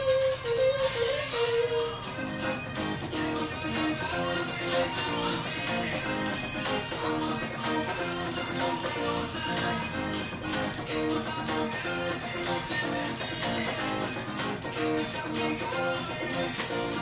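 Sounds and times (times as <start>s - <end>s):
backing track with percussion beat: 0.0s - 17.0s
electric guitar melody: 0.0s - 17.0s.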